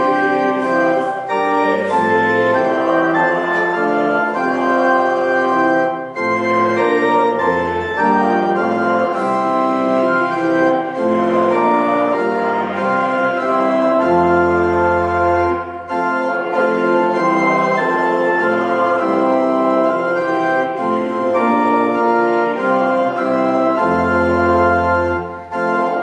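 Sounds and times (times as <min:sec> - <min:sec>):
church organ playing chords: 0:00.0 - 0:26.0.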